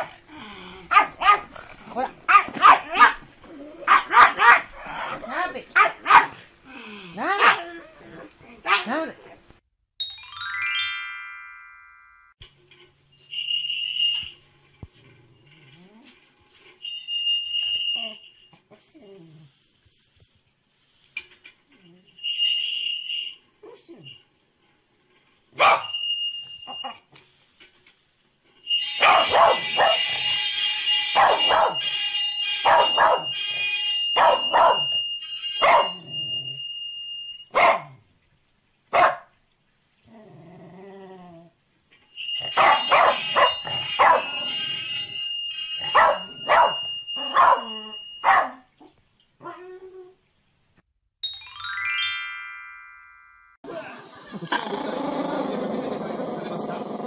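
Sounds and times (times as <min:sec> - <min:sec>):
dog barking: 0:00.9 - 0:01.5, 0:02.3 - 0:03.2, 0:03.9 - 0:04.9, 0:05.8 - 0:06.4, 0:07.2 - 0:07.6, 0:08.6 - 0:09.0, 0:25.6 - 0:25.9, 0:29.0 - 0:30.1, 0:31.2 - 0:31.8, 0:32.6 - 0:33.3, 0:34.2 - 0:34.9, 0:35.6 - 0:36.0, 0:37.5 - 0:38.0, 0:38.9 - 0:39.3, 0:42.6 - 0:44.3, 0:45.9 - 0:48.7
high steady ringing tone: 0:13.1 - 0:14.7, 0:16.5 - 0:18.6, 0:22.1 - 0:23.5, 0:25.9 - 0:26.9, 0:28.5 - 0:37.5, 0:42.0 - 0:48.6.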